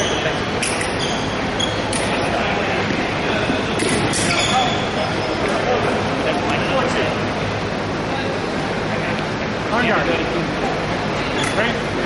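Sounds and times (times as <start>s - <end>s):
noisy gym hall background: 0.0s - 12.0s.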